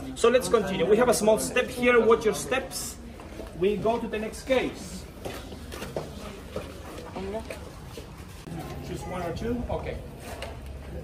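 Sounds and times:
murmur of people: 0.0s - 11.0s
footsteps on stone floor: 5.1s - 8.8s.

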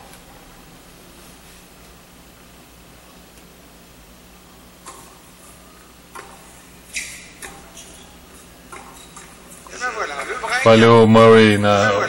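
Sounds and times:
tennis ball bouncing and struck: 8.7s - 9.4s.

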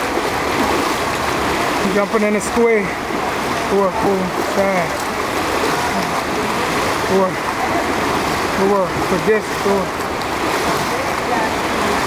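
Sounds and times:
pool water churning and splashing: 0.0s - 12.0s.

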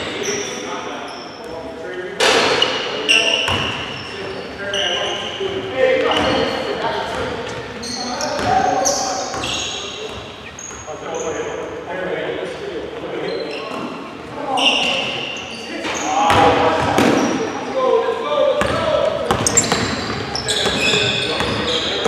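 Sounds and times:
sneakers squeaking: 0.0s - 11.8s, 12.8s - 17.7s, 18.6s - 22.0s.

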